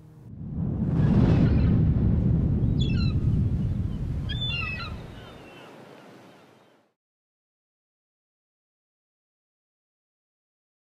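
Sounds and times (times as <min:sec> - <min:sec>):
deep rumbling boom: 0:00.2 - 0:05.0
bird-like chirping: 0:04.3 - 0:06.8.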